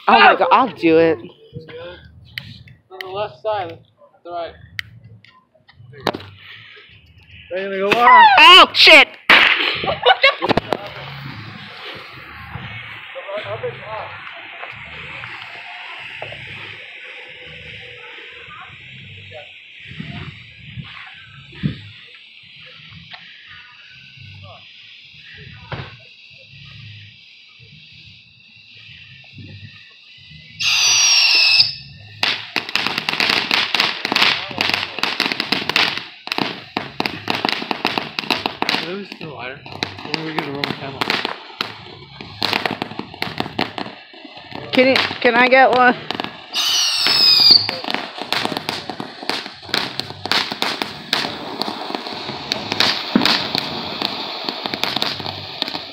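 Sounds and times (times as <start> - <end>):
rapid firework crackling: 0.0 - 55.9
spark fountain firework hissing: 0.0 - 55.9
shrill whistle falling in pitch: 7.9 - 8.6, 30.6 - 31.9, 46.5 - 47.8.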